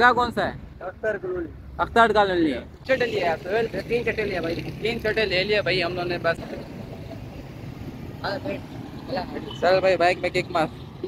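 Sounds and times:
passing road traffic: 0:00.0 - 0:11.0.

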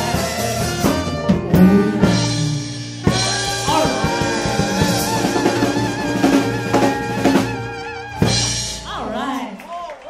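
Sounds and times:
trumpet: 0:00.0 - 0:09.0
drum kit: 0:00.0 - 0:09.3
swing big band playing: 0:00.0 - 0:09.3.

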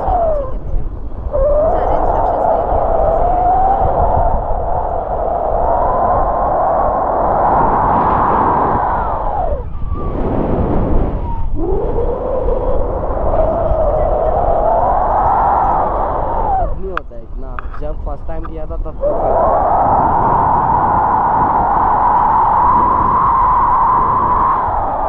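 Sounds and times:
wind rushing over camera: 0:00.0 - 0:25.0.

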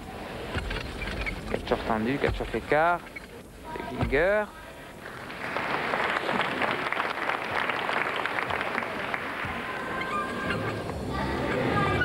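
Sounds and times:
audience applauding: 0:05.0 - 0:10.1.

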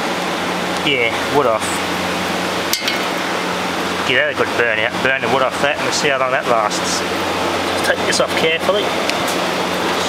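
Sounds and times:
pencil clinking on steel plate: 0:02.7 - 0:03.1.

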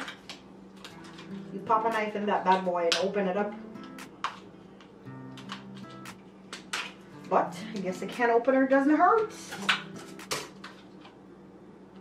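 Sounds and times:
clicks and rustles of packaging: 0:09.5 - 0:11.2.

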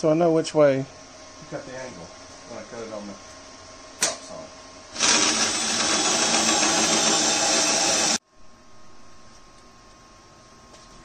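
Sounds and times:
sharp click: 0:04.0 - 0:04.2
power drill cutting tube: 0:05.0 - 0:08.2.

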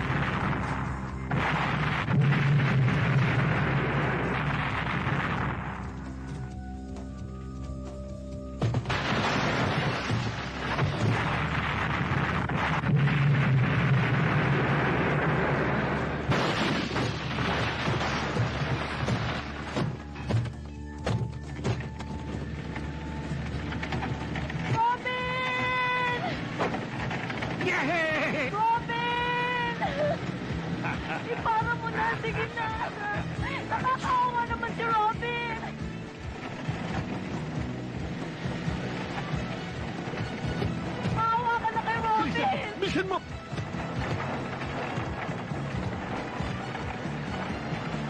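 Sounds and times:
explosion blast: 0:00.0 - 0:06.0, 0:08.8 - 0:19.9.

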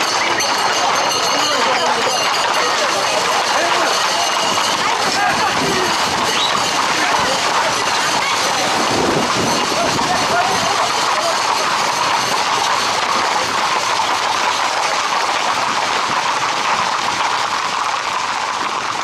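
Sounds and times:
crowd voices: 0:00.0 - 0:19.0
horse hooves clattering on pavement: 0:00.0 - 0:19.0.

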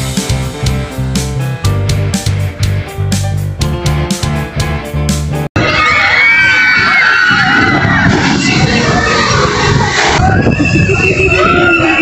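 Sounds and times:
riders screaming and cheering: 0:05.6 - 0:12.0.

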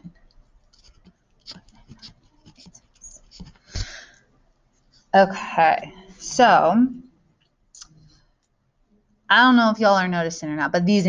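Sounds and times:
pen scratching on paper: 0:00.7 - 0:03.8.

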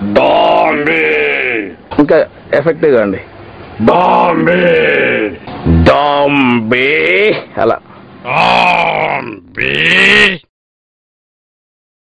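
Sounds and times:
person making drawn-out vocal calls: 0:00.0 - 0:01.8, 0:03.8 - 0:07.3, 0:08.2 - 0:10.5.

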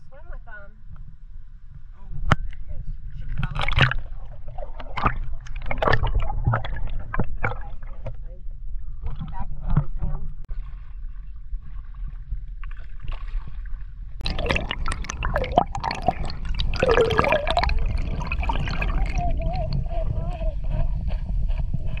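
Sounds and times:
constant low rumble: 0:00.0 - 0:14.3, 0:16.1 - 0:22.0
water splashing and gurgling: 0:03.0 - 0:22.0.

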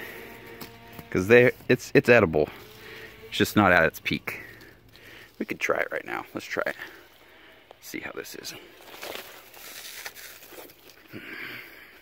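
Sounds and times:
biting into an apple: 0:08.9 - 0:11.2.

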